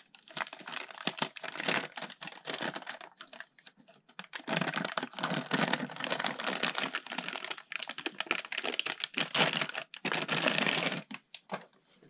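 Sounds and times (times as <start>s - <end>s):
plastic bag crinkling: 0.0s - 11.7s.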